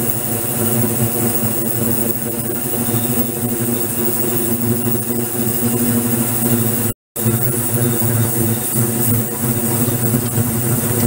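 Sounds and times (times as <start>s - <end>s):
ultrasonic cleaner low hum: 0.0s - 11.0s.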